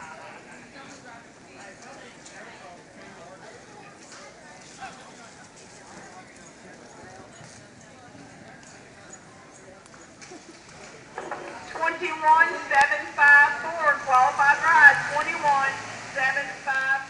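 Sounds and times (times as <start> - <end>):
murmur of people talking: 0.0 - 17.0.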